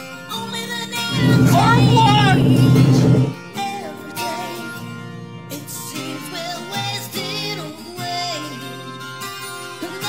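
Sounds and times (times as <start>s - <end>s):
loud low horn blast: 1.1s - 3.4s.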